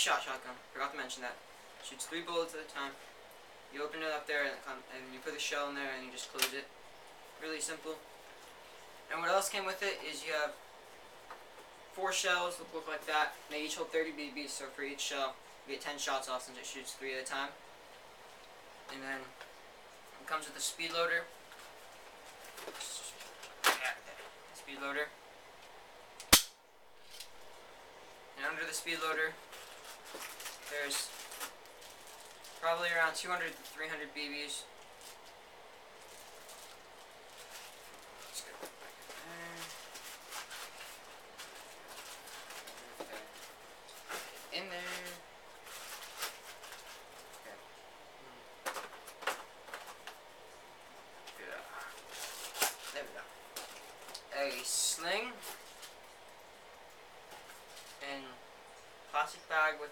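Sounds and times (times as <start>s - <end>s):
packaging rustling in a box: 29.4s - 32.6s, 51.9s - 54.1s.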